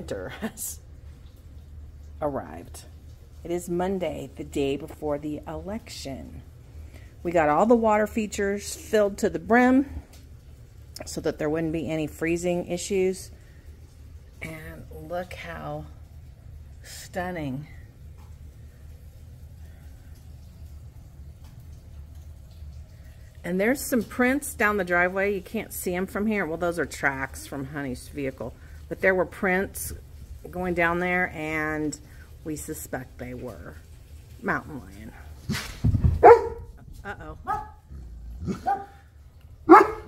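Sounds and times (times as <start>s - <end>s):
faint low rumble: 0.0s - 40.0s
dog barking: 36.2s - 36.7s, 37.5s - 37.8s, 38.4s - 39.0s, 39.7s - 40.0s.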